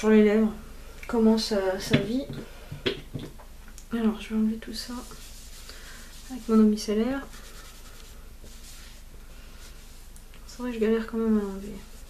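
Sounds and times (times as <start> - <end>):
cotton pad rubbing skin: 4.9 - 10.1.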